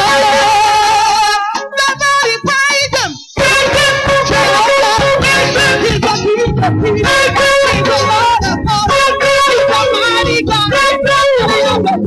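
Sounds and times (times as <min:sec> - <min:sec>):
gospel band playing: 0:00.0 - 0:12.0
woman singing: 0:00.0 - 0:12.0.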